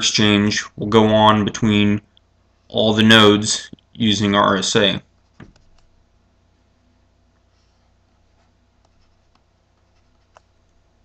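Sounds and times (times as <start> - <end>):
stylus scratching on tablet: 5.0 - 5.9, 7.4 - 10.6.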